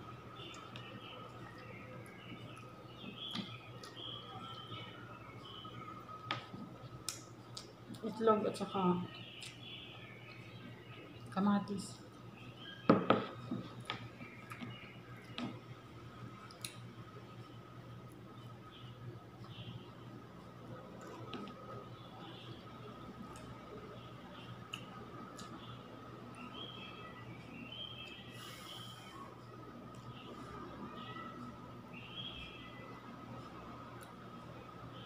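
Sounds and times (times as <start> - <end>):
person breathing through nose: 28.3 - 29.2.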